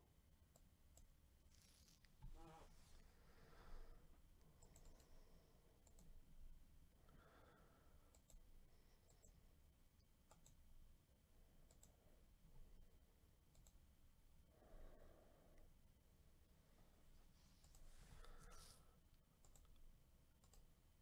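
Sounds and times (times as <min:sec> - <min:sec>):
computer mouse clicks: 0:00.5 - 0:02.4, 0:04.5 - 0:05.2, 0:05.8 - 0:06.2, 0:08.0 - 0:09.4, 0:10.2 - 0:10.6, 0:11.6 - 0:12.0, 0:13.5 - 0:13.8, 0:17.6 - 0:18.8, 0:19.4 - 0:20.7.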